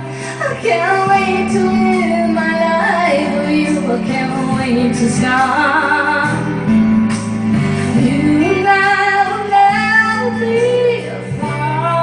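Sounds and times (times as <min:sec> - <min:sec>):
backing track: 0:00.0 - 0:12.0
woman singing pop ballad: 0:00.0 - 0:12.0.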